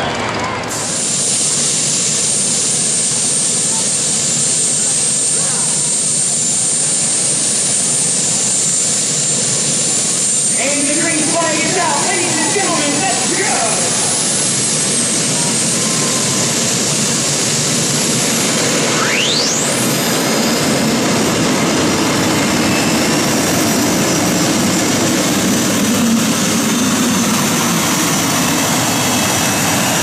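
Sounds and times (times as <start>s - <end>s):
turbine engine high-pitched whine: 0.0s - 30.0s
man talking: 10.5s - 14.2s.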